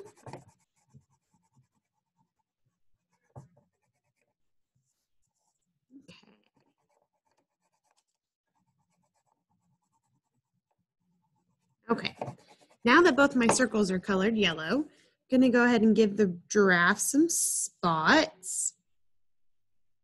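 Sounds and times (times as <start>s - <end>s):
crayon scratching on paper: 0.0s - 13.6s.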